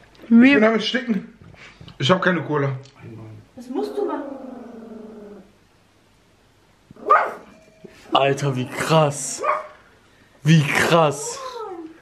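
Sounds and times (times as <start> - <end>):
dog barking: 7.0 - 7.6, 9.4 - 9.8.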